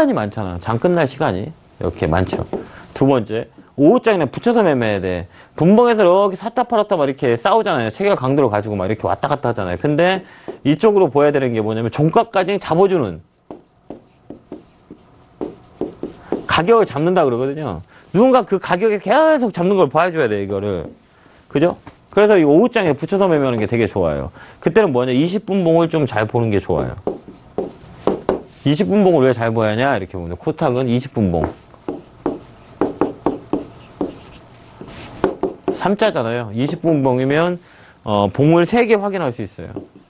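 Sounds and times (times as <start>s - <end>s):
stylus tapping and scratching screen: 1.8s - 2.7s, 13.4s - 17.6s, 25.3s - 28.5s, 31.4s - 35.9s, 36.6s - 37.2s, 39.5s - 40.0s.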